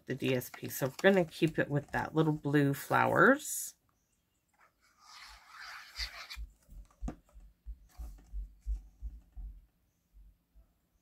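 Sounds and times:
paper rustling: 0.1s - 3.0s.

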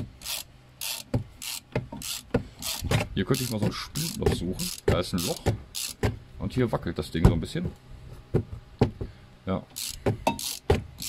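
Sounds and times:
plastic panel knocking: 2.9s - 6.2s.

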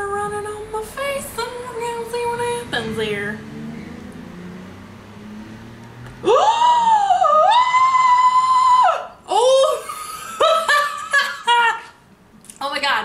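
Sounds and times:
woman squealing: 6.2s - 10.0s
woman giggling: 9.5s - 12.0s.

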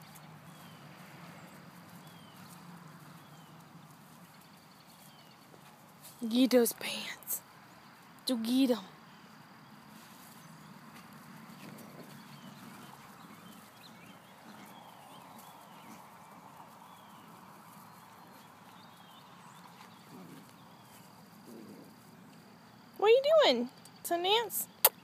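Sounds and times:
scuffling and rustling on grass: 0.0s - 7.0s, 9.2s - 22.8s.

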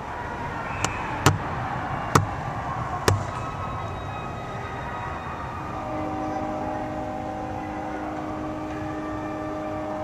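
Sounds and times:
ice arena background noise: 0.0s - 10.0s
sharp bangs: 0.8s - 3.6s.

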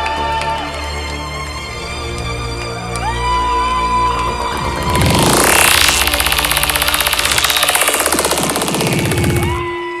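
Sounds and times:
fast pulsing synthesizer rhythm: 4.0s - 9.7s
gliding high synth tones: 4.2s - 9.6s
held synth tone: 4.2s - 9.7s.

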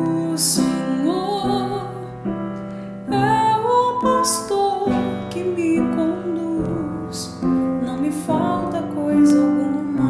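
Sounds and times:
woman singing a psalm melody: 0.0s - 2.4s, 3.0s - 10.0s.

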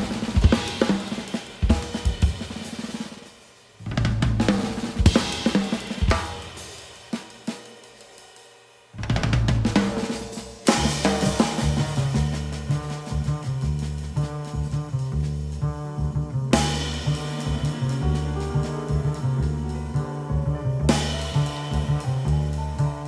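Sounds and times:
jazz drum kit phrases: 0.0s - 23.0s.

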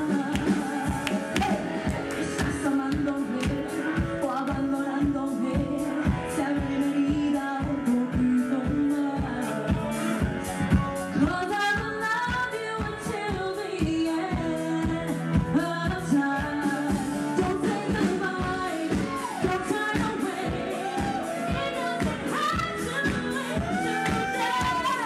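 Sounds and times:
backing music with drum beat: 0.0s - 25.0s
woman singing into microphone: 0.0s - 25.0s.

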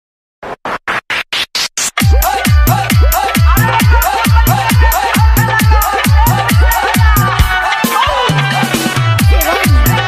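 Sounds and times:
chopped rising noise sweep: 0.4s - 2.2s.

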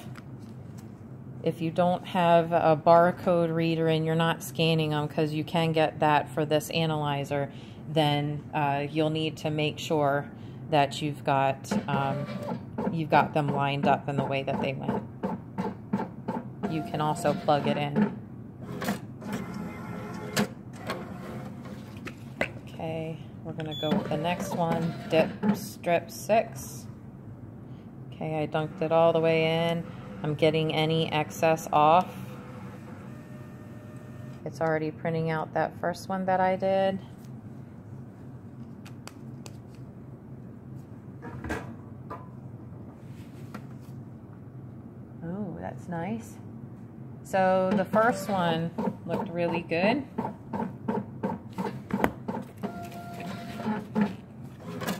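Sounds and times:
analyzer motor whirring: 32.2s - 34.4s.

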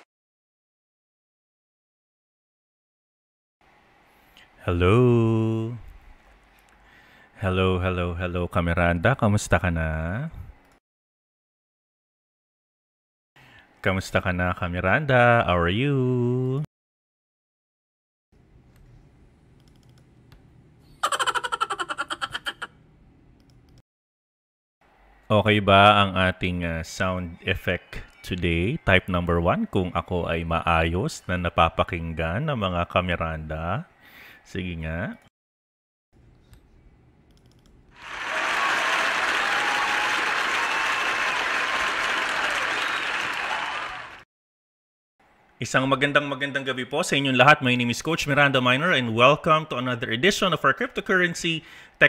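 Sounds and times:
crowd clapping: 38.0s - 44.2s.

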